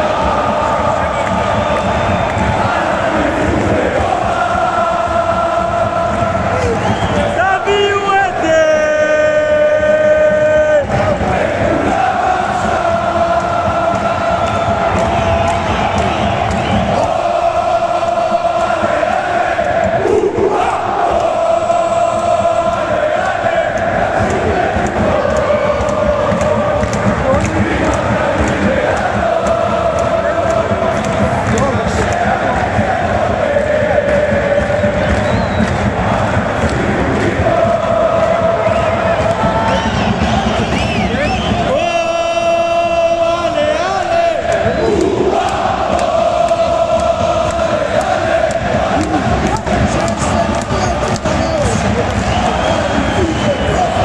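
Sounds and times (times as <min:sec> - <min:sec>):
crowd singing a chant: 0:00.0 - 0:54.0.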